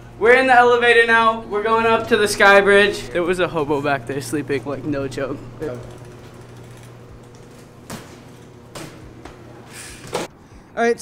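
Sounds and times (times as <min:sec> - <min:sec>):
low hum: 0:00.0 - 0:10.1
bike rolling on hard floor: 0:00.7 - 0:10.3.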